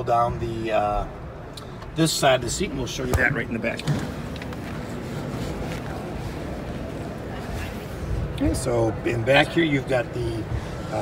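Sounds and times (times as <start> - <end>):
exhibition hall background noise: 0.0 - 11.0.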